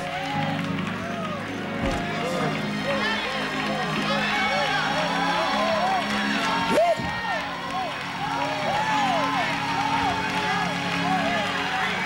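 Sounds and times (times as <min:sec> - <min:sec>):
audience voices: 0:00.0 - 0:12.0.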